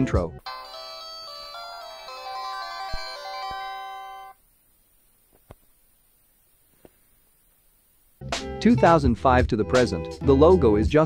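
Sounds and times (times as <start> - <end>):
phone power-on jingle: 0.4 - 4.4.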